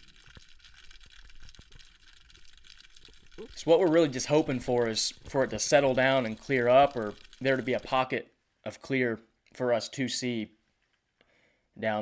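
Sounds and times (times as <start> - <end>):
faint clicks and crackles: 0.0 - 8.2.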